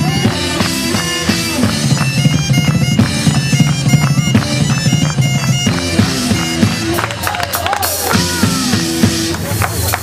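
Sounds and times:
bagpipe melody with drone: 0.0 - 7.2
rock drum kit: 0.0 - 10.0.

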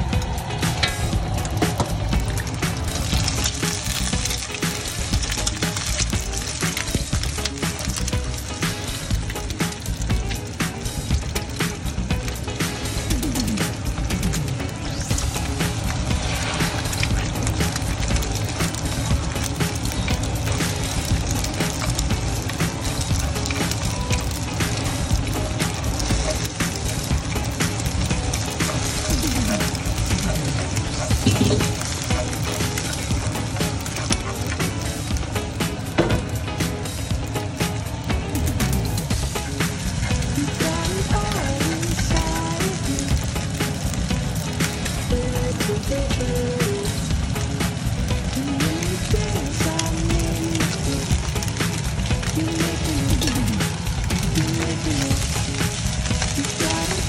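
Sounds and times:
background music: 0.0 - 57.0
eggs sizzling in hot oil: 0.0 - 57.0.

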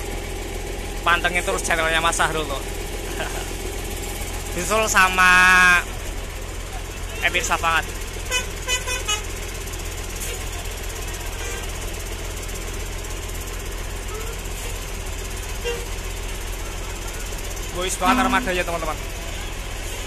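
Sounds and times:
buses idling: 0.0 - 20.0
short horn toots: 15.6 - 15.9, 18.0 - 18.6.

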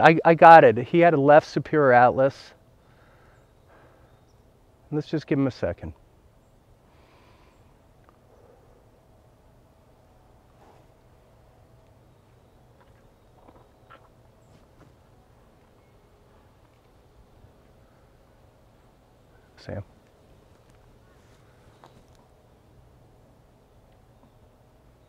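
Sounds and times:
low steady hum: 0.0 - 25.0.

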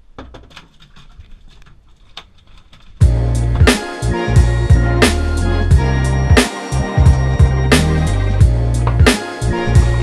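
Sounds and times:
music with a steady beat: 3.0 - 10.0.

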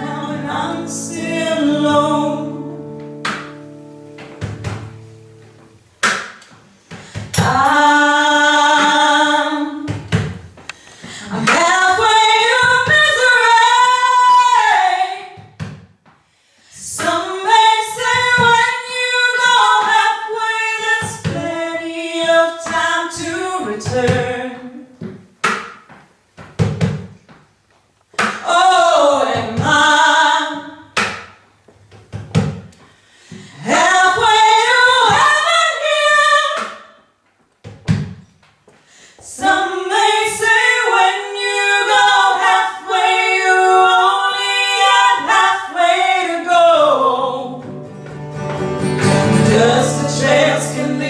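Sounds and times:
women singing: 0.0 - 3.0, 7.1 - 10.2, 11.0 - 15.6, 16.7 - 25.0, 28.4 - 31.0, 33.4 - 36.9, 39.2 - 47.7, 49.2 - 51.0.

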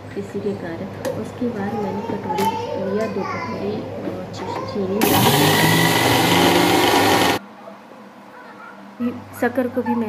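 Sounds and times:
mixer grinder grinding sugar: 5.0 - 7.4.

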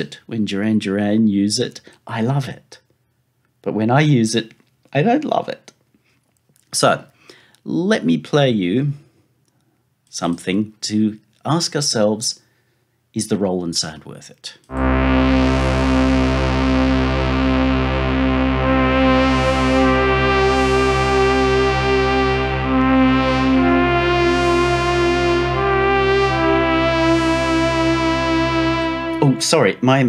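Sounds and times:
low synthesizer bass drone: 14.7 - 29.8
synthesizer held notes: 14.7 - 30.0.

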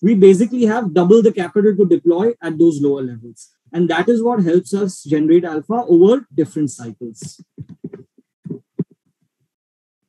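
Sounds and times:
man's voice fragments: 0.0 - 7.5.

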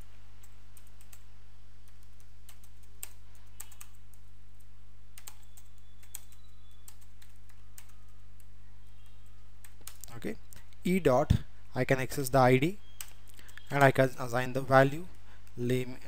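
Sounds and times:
computer keyboard typing: 0.0 - 10.1, 12.9 - 13.7
low electrical hum: 0.0 - 16.0.

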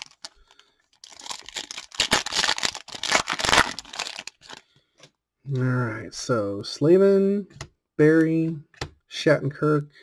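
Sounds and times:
foil wrapper tearing and crinkling: 0.0 - 4.6.

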